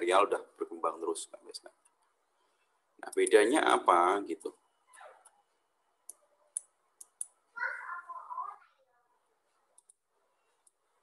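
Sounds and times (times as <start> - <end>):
computer mouse clicks: 6.0 - 7.4, 9.8 - 10.0.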